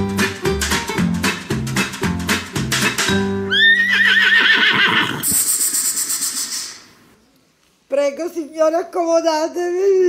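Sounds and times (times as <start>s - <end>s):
opening music: 0.0s - 4.3s
horse whinnying: 3.5s - 5.8s
high hissing wash: 5.2s - 7.1s.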